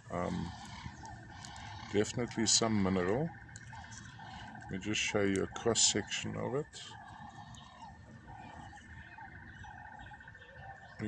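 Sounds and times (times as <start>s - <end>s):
short lower animal calls: 0.0s - 11.0s.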